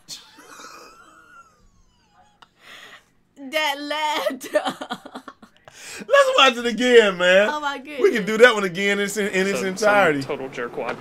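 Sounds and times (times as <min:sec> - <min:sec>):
people laughing breathily: 0:00.1 - 0:03.0.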